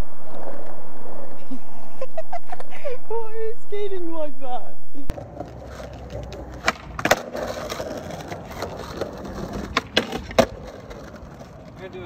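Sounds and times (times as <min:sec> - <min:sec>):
skateboard wheels rolling on asphalt: 0:00.0 - 0:03.1, 0:05.1 - 0:12.0
skateboard popping and landing: 0:05.1 - 0:11.8.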